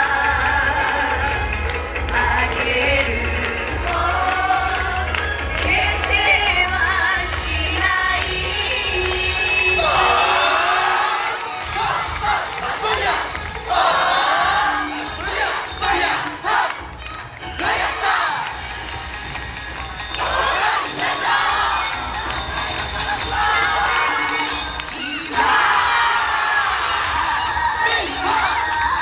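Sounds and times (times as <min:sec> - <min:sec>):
dance music bass: 0:00.0 - 0:29.0
group shouting calls: 0:09.8 - 0:16.8.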